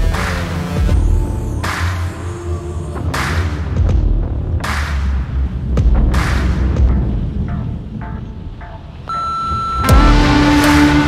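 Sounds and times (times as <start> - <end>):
music: 0.0 - 11.0
low rumble: 2.3 - 11.0
high electronic beep tone: 9.0 - 10.6
sharp hit: 9.8 - 11.0.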